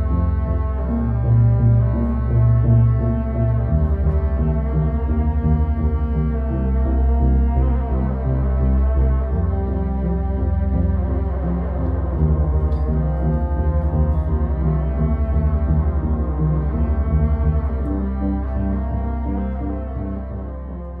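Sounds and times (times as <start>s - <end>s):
droning synthesizer music: 0.0s - 21.0s.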